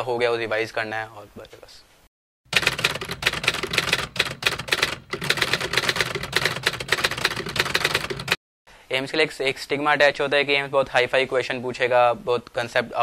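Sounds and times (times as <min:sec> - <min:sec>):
typewriter key clacks: 0:02.5 - 0:08.4.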